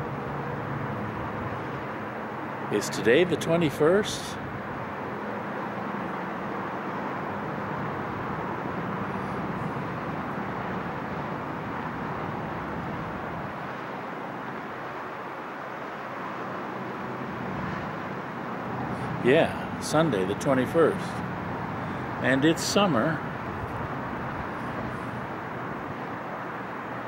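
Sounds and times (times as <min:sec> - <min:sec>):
distant traffic hum: 0:00.0 - 0:27.0.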